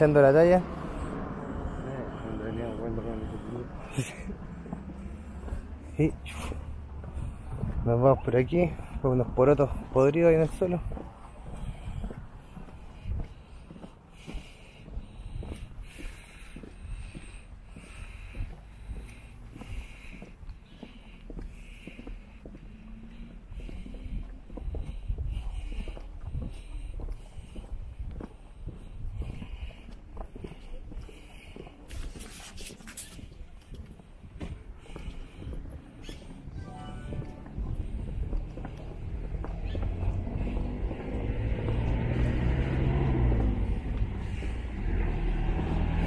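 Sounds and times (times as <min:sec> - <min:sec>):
footsteps on concrete: 0:00.0 - 0:46.0
wind rumble: 0:00.6 - 0:02.9, 0:10.7 - 0:20.6, 0:23.3 - 0:31.1, 0:33.3 - 0:46.0.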